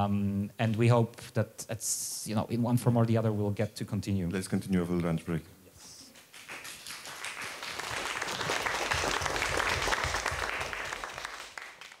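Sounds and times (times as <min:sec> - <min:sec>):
audience applauding: 0:06.2 - 0:12.0.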